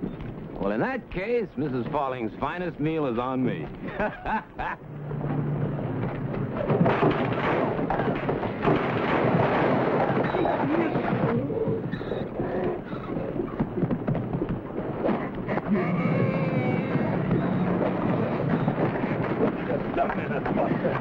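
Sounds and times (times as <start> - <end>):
wooden crashes and thuds: 5.7 - 16.2.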